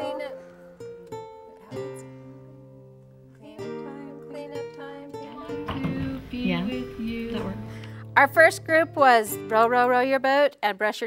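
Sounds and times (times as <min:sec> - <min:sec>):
acoustic guitar chords: 0:00.0 - 0:10.2.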